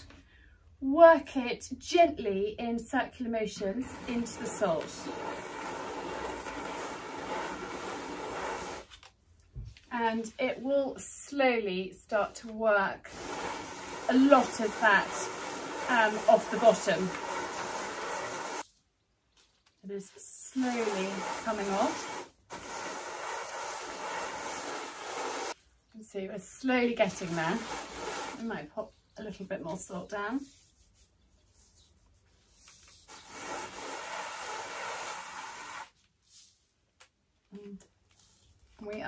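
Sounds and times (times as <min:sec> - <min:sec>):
iron scraping over salt: 0:03.8 - 0:08.9, 0:12.9 - 0:18.7, 0:20.2 - 0:25.6, 0:26.8 - 0:28.7, 0:33.1 - 0:36.0.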